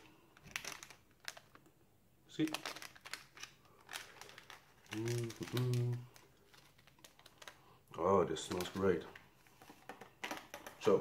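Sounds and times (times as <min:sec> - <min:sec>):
plastic sachet crinkling: 0:00.0 - 0:01.7, 0:02.3 - 0:11.0.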